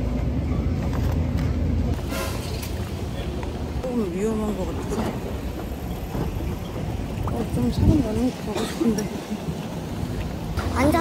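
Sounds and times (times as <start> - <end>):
traffic rumble: 0.0 - 11.0.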